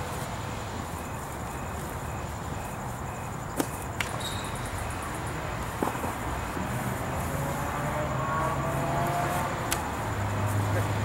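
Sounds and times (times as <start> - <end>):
background traffic noise: 0.0 - 11.0
vehicle engine rising in pitch: 6.7 - 11.0.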